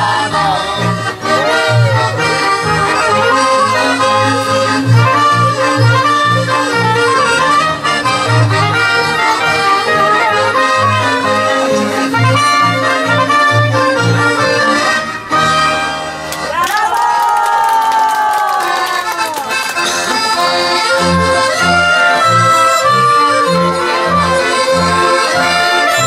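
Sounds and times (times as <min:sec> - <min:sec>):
double bass pulsing: 0:00.0 - 0:16.2, 0:20.4 - 0:26.0
trumpet: 0:00.0 - 0:16.2, 0:19.9 - 0:26.0
fiddles: 0:00.0 - 0:16.5, 0:18.6 - 0:26.0
clarinet: 0:00.0 - 0:16.6, 0:18.6 - 0:26.0
accordion: 0:00.0 - 0:16.7, 0:18.3 - 0:26.0
folk band playing dance tune: 0:00.0 - 0:17.2, 0:18.3 - 0:26.0.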